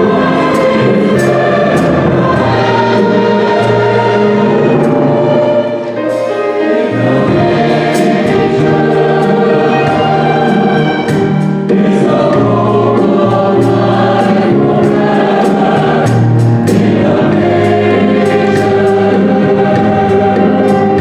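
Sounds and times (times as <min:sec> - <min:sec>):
cymbal and drum strokes: 0:00.0 - 0:21.0
mixed choir singing: 0:00.0 - 0:21.0
small band playing: 0:00.0 - 0:21.0.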